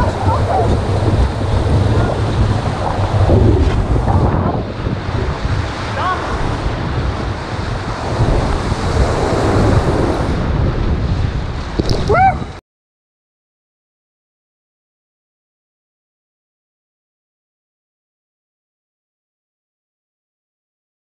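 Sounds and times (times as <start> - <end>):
whitewater rapids rushing: 0.0 - 10.7
wind rumble on microphone: 0.0 - 12.6.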